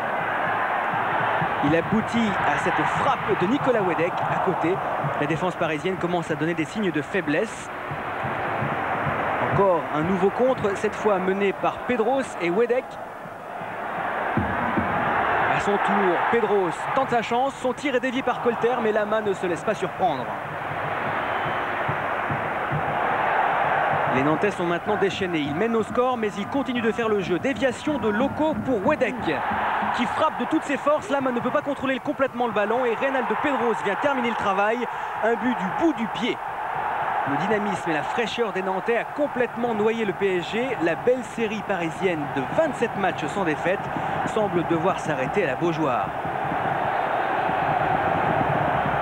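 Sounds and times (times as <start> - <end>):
stadium crowd din: 0.0 - 49.0.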